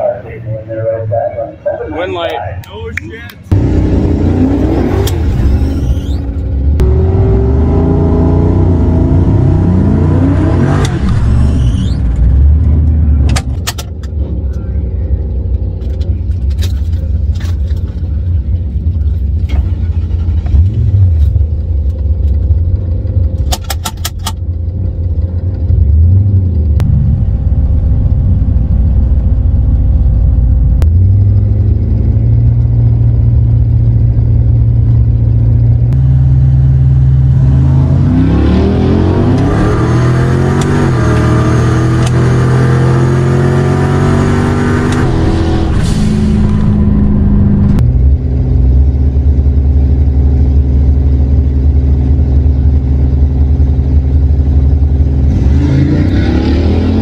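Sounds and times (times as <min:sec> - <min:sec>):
car engine revving and accelerating: 0:03.5 - 0:13.4, 0:30.6 - 0:57.0.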